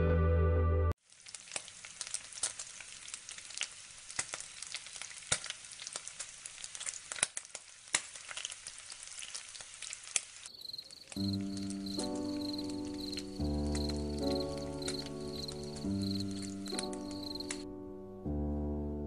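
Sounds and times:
crackling hiss with pops: 1.0s - 17.7s.

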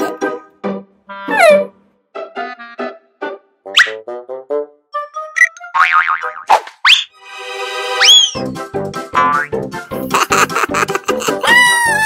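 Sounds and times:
playful cartoon music: 0.0s - 12.0s
boing-like sound effect: 5.8s - 6.5s.

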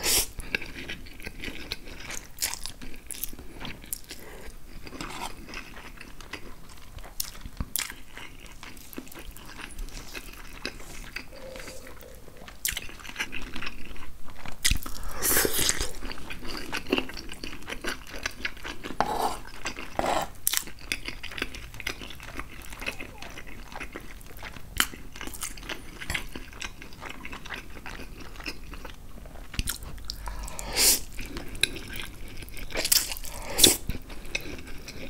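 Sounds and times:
close chewing: 0.0s - 35.0s.

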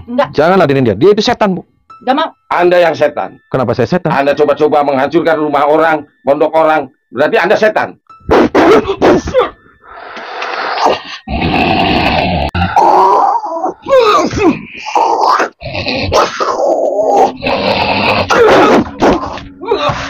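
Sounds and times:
man groaning and wailing: 10.8s - 20.0s.

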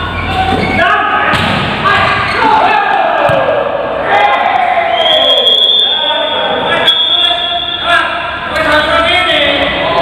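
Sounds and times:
players shouting: 0.3s - 8.5s.

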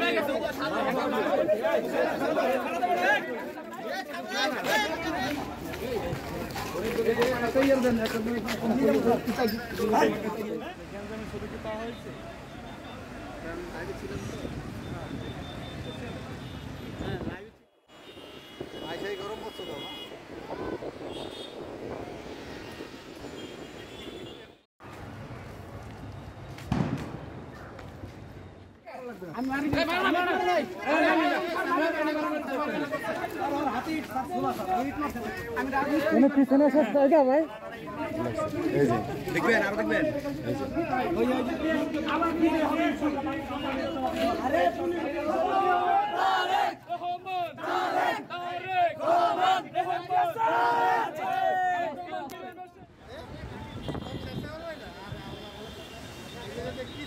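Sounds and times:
crowd of men chanting: 44.0s - 52.0s.

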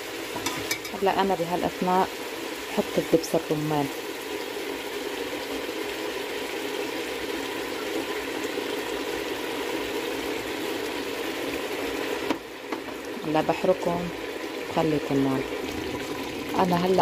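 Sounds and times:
chicken frying in a pot: 0.0s - 17.0s.

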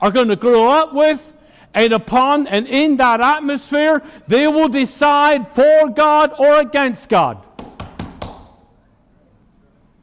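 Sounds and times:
hand knocking on wooden pulpit: 7.6s - 8.5s.

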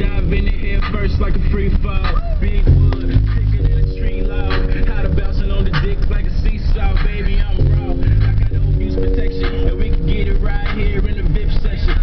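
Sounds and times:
car cabin rumble: 0.0s - 12.0s
music from car stereo: 0.0s - 12.0s.

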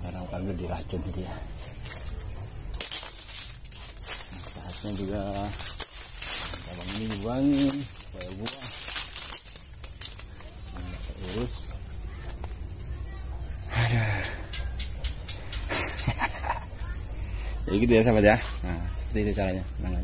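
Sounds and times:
rustling: 0.0s - 13.3s, 17.7s - 19.4s
steady high hiss: 0.0s - 20.0s.

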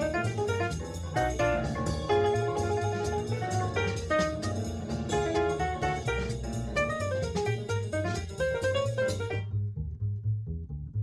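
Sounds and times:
drum kit with cymbals: 0.0s - 9.4s
jazz melody notes: 0.0s - 10.1s
upright bass line: 0.0s - 11.0s.

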